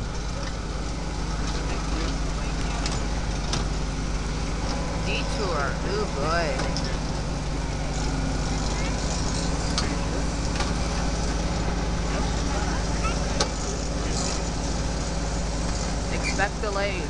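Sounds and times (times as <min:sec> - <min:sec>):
tractor engine running: 0:00.0 - 0:17.0.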